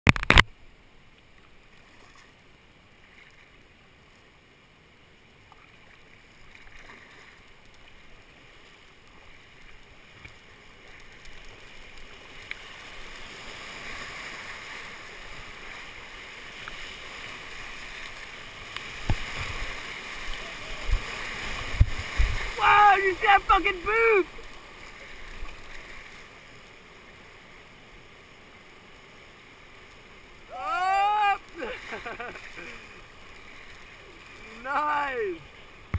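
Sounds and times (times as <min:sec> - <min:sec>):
whitewater rapids rushing: 0:12.8 - 0:25.7, 0:30.3 - 0:35.9.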